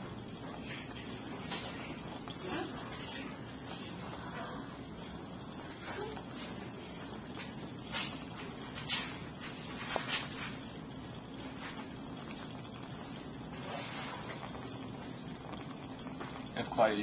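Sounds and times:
gas burner flame hissing: 0:00.0 - 0:17.0.

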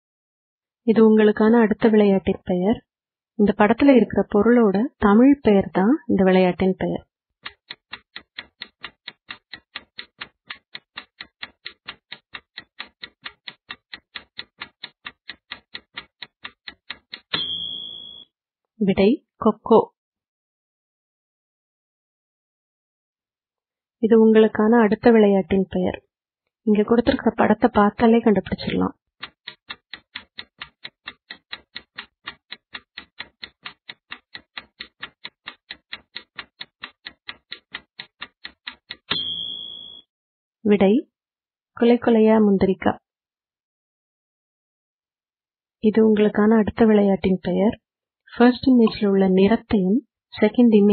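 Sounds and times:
fast clock-like ticking: 0:07.4 - 0:18.2, 0:27.0 - 0:40.0
loud high ring: 0:17.4 - 0:18.2, 0:39.1 - 0:40.0
single high tone: 0:17.4 - 0:18.3, 0:39.1 - 0:40.0.

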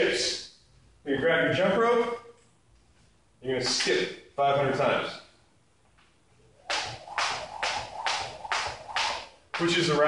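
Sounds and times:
skipping rope swishing: 0:06.6 - 0:09.8.

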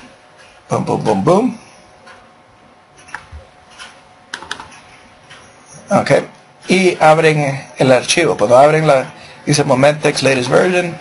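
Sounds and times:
computer mouse clicks: 0:03.0 - 0:05.5.

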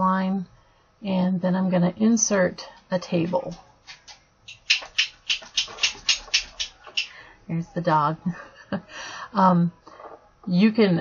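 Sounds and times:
dog making hissy noises: 0:03.8 - 0:07.1.

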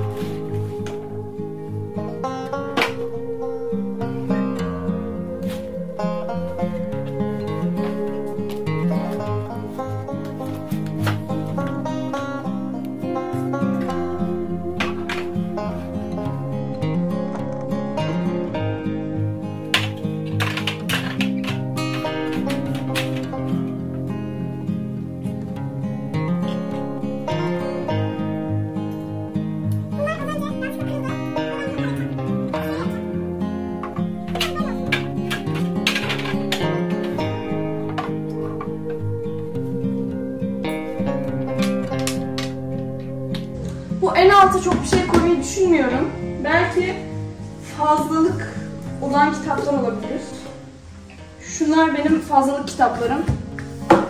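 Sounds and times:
upbeat acoustic guitar music: 0:00.0 - 0:54.0.

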